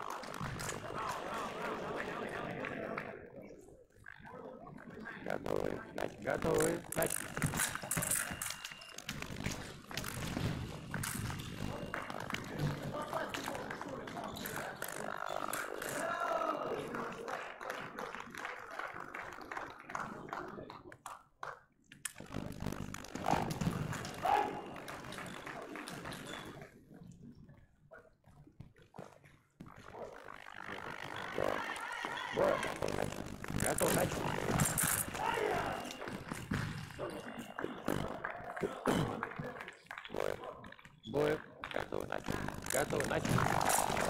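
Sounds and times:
indistinct voices: 0:00.0 - 0:08.5, 0:11.6 - 0:17.6, 0:30.4 - 0:44.0.

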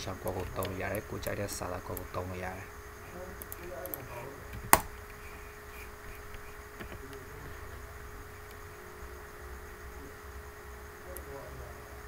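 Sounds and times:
background hiss: 0:00.0 - 0:12.0
low electrical hum: 0:00.0 - 0:12.0.

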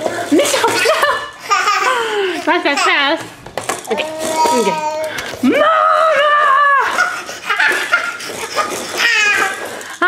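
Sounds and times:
toddler laughing and squealing: 0:06.7 - 0:09.8.

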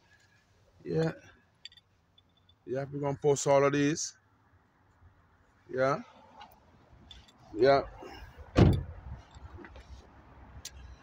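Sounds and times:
car door shutting: 0:08.5 - 0:09.0.

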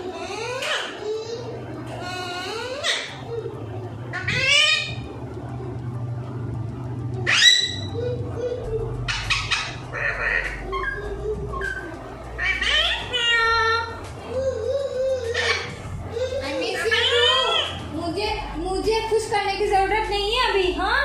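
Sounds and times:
parakeet harsh calls: 0:00.0 - 0:01.4, 0:02.0 - 0:03.4, 0:04.1 - 0:05.1, 0:07.2 - 0:08.2, 0:09.0 - 0:14.0, 0:15.2 - 0:15.9, 0:16.5 - 0:17.9.

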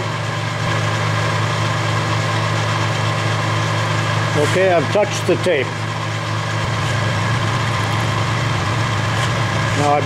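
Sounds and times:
milling machine motor hum: 0:00.0 - 0:10.0.

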